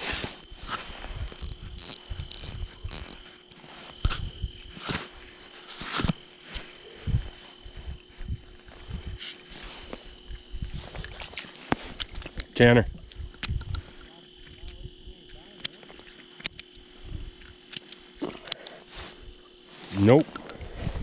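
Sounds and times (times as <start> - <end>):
fishing reel cranking: 0.0 - 0.4, 1.2 - 3.2
faint high whine: 0.0 - 21.0.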